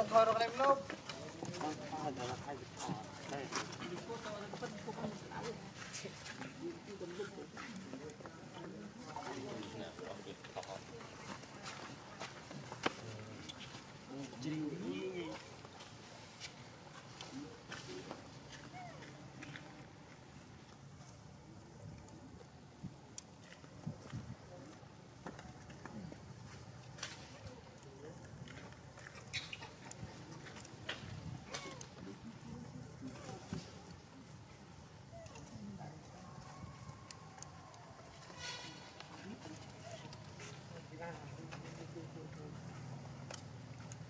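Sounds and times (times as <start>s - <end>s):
faint human voices: 17.2s - 44.0s.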